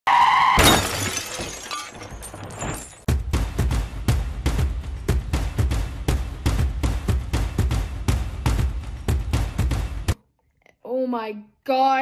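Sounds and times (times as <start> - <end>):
glass breaking crash: 0.6 - 3.1.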